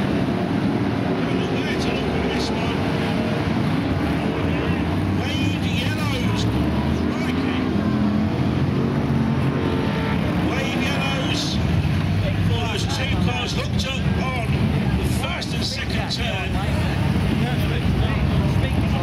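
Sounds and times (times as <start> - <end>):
race car engines passing: 0.0 - 19.0.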